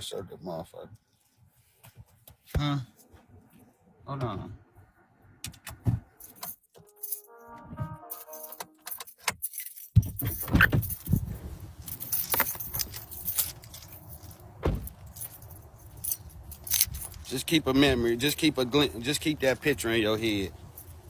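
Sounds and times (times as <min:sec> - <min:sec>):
jangling metal: 0:08.4 - 0:17.6.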